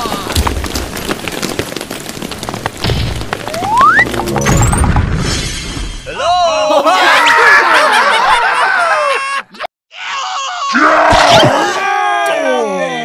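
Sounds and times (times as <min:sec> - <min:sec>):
crashing shattering sound effect: 0:02.8 - 0:06.1
cartoon voices squealing: 0:10.0 - 0:11.9.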